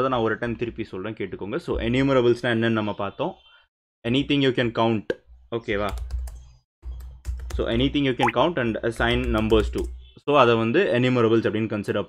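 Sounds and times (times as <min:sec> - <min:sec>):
computer keyboard typing: 0:05.9 - 0:07.9, 0:09.0 - 0:10.0
man talking: 0:07.6 - 0:12.0.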